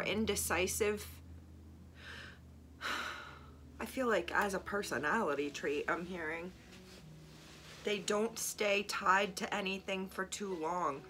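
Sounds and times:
woman speaking: 0:00.0 - 0:01.2, 0:03.8 - 0:06.6, 0:07.8 - 0:11.0
woman breathing in: 0:02.0 - 0:03.6.

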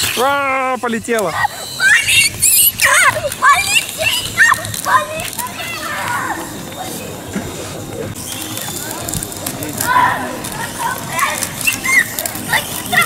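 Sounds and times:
street hubbub: 0:00.0 - 0:13.0
children calling out: 0:01.2 - 0:07.3, 0:08.4 - 0:13.0.

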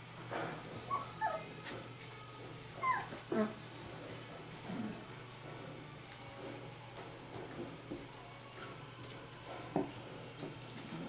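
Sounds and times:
puppies whimpering and yipping: 0:00.9 - 0:01.6, 0:02.7 - 0:03.6.

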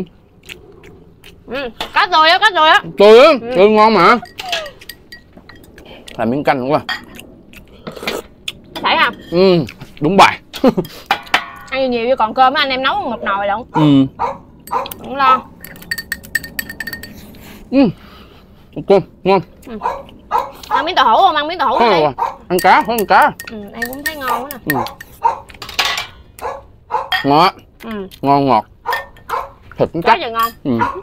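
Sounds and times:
utensils clinking ceramic bowls: 0:04.0 - 0:05.8, 0:06.9 - 0:07.2, 0:08.8 - 0:09.6, 0:10.6 - 0:11.8, 0:14.6 - 0:15.0, 0:15.6 - 0:17.4, 0:22.5 - 0:26.3, 0:27.1 - 0:27.5, 0:28.9 - 0:29.4, 0:30.0 - 0:30.9.

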